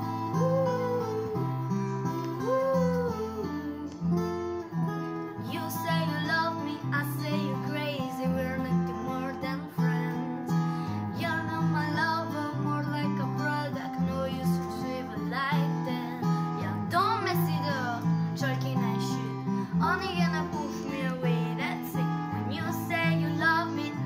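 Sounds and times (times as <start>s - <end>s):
person singing: 0.0s - 4.1s, 5.4s - 24.0s
acoustic guitar chords: 0.0s - 24.0s.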